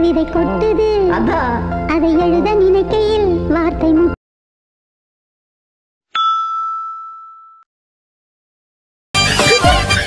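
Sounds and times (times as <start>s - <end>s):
bell-like ding: 6.1s - 7.7s.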